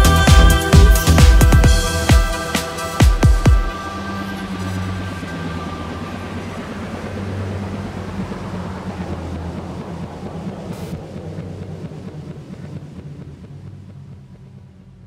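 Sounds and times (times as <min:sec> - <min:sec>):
low synth bass drone: 0:00.0 - 0:15.0
noisy wind-like wash: 0:00.0 - 0:15.0.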